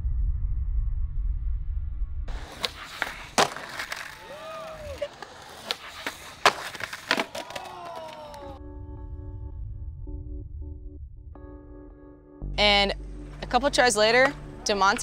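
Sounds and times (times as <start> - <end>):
skateboard cracks and clatters: 2.3 - 8.6
skateboard wheels rolling on concrete: 2.3 - 8.6
onlookers calling out: 3.9 - 5.7, 7.1 - 8.6
music: 8.2 - 15.0.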